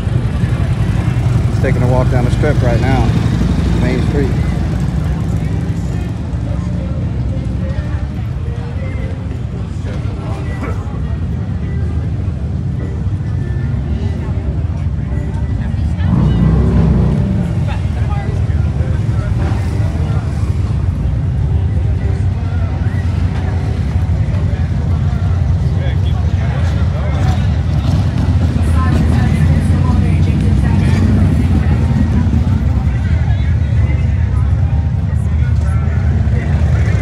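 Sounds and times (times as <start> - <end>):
motorcycle engine revving: 0.0 - 6.1, 15.8 - 21.0
crowd chatter: 0.0 - 37.0
motorcycle engines running: 0.0 - 37.0.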